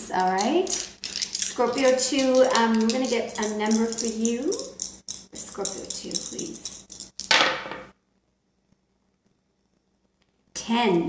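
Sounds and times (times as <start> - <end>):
dice clattering on cloth table: 0.4 - 7.9.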